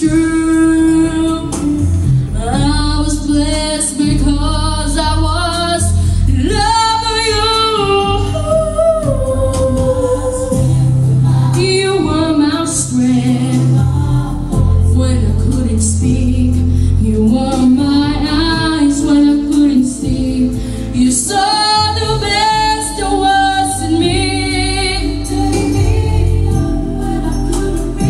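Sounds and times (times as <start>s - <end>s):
low bass notes: 0.0s - 28.0s.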